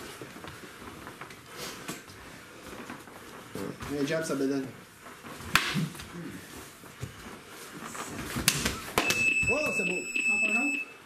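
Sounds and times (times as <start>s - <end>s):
electronic timer beep: 9.0s - 11.0s.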